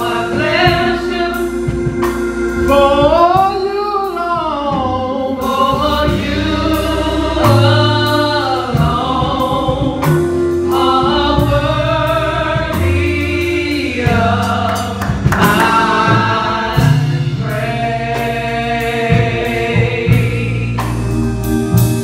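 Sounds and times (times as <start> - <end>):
women singing gospel: 0.0 - 21.8
musical accompaniment with bass: 0.0 - 22.0.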